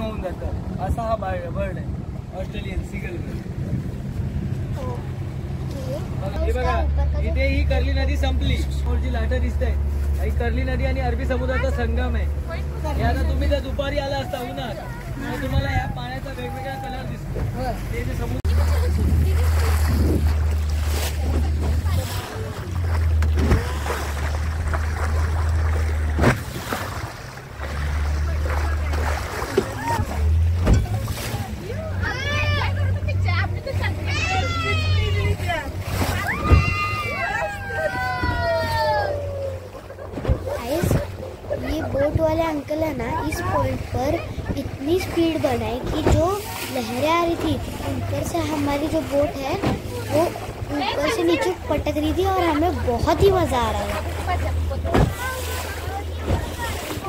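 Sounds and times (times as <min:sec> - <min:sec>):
motorboat engine drone: 0:00.0 - 0:57.0
water rushing along hull: 0:00.0 - 0:57.0
wind: 0:00.0 - 0:57.0
hull slapping on waves: 0:08.1 - 0:57.0.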